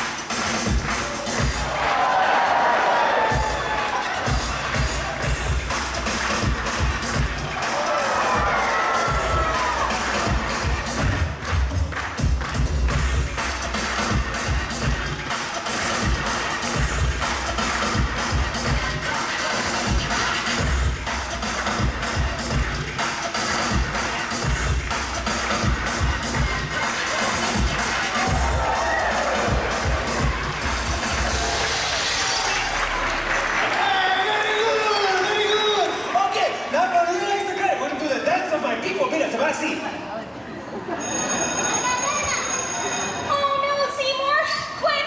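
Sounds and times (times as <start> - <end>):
show music with steady beat: 0.0 - 1.9, 3.2 - 33.8
audience cheering: 0.9 - 5.4, 7.4 - 11.0, 27.8 - 37.1.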